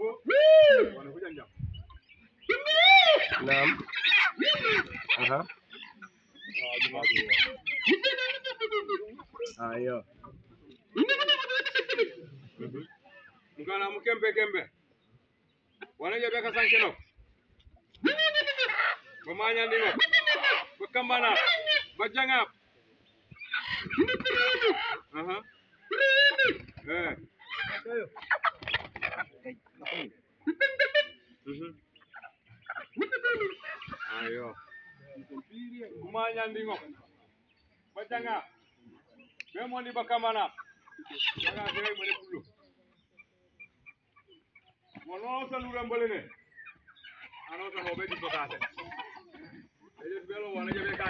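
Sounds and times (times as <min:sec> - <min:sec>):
chickens squawking and clucking: 0:00.0 - 0:51.0
voice drawn-out call: 0:02.5 - 0:05.5, 0:18.0 - 0:22.0.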